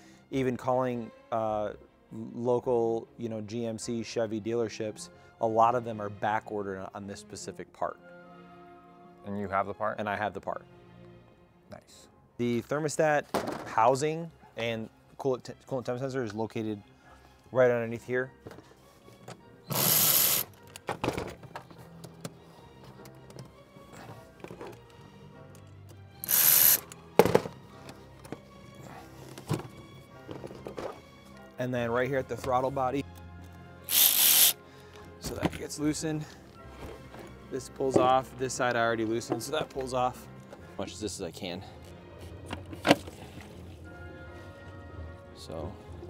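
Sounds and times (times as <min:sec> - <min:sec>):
background music: 0:00.0 - 0:46.0
rubber hose being handled: 0:18.4 - 0:25.0
electric ratchet running: 0:19.7 - 0:20.5, 0:26.2 - 0:26.8, 0:33.9 - 0:34.6.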